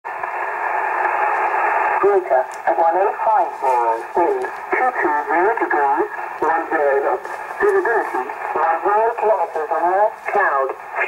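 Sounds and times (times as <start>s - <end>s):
shortwave radio static hiss: 0.1s - 11.0s.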